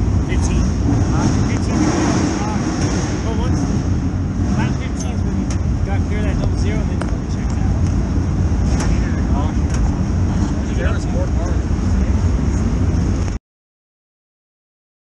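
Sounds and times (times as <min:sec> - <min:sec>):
engines rumbling: 0:00.0 - 0:13.4
voices talking: 0:00.2 - 0:13.2.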